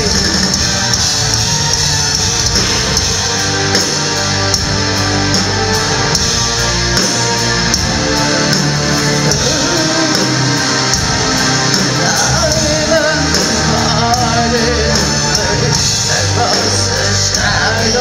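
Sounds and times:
live metal band playing: 0.0s - 18.0s.

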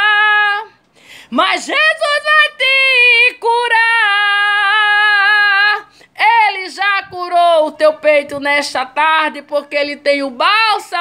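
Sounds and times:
woman singing unaccompanied: 0.0s - 11.0s
singer breath: 0.8s - 1.4s.

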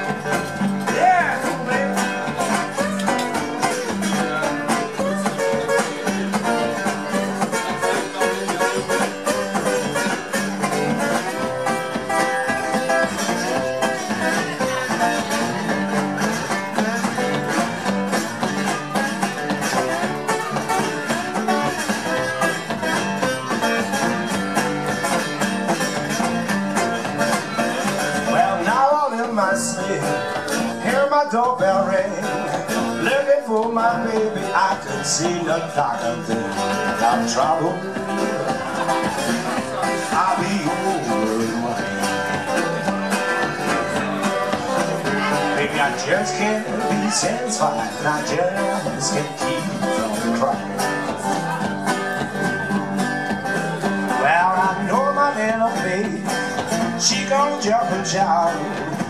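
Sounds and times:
guitars playing blues: 0.0s - 59.0s.

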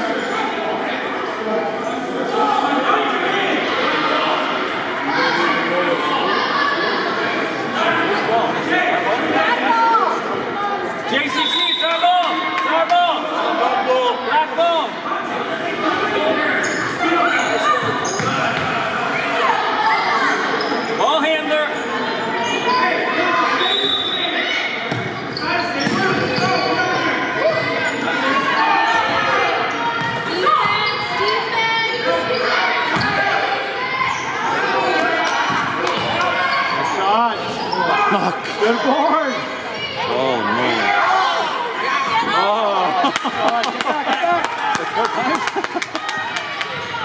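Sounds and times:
people calling out and talking: 0.0s - 47.0s
shoe squeaks: 16.6s - 18.4s, 25.3s - 27.0s.

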